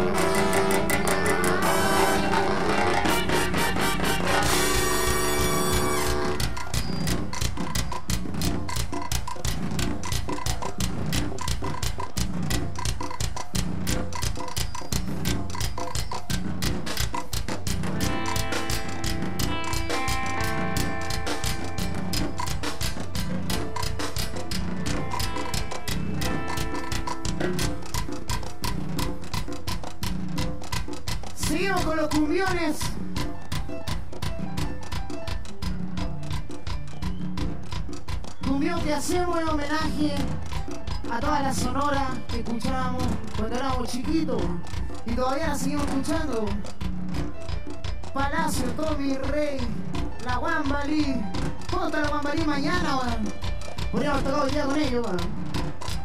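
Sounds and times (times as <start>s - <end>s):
fast percussion beat: 0.0s - 56.0s
live band playing: 0.0s - 56.0s.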